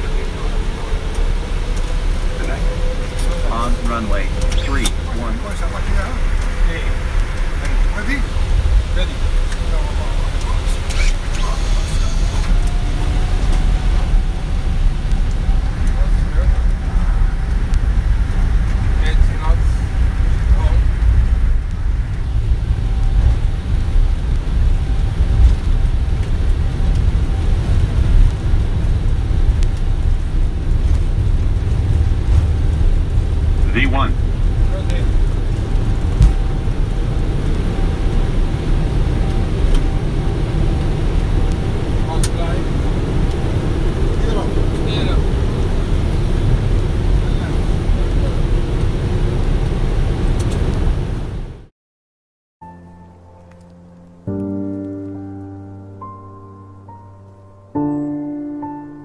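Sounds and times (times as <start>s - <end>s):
jet engines low rumble: 0.0s - 51.7s.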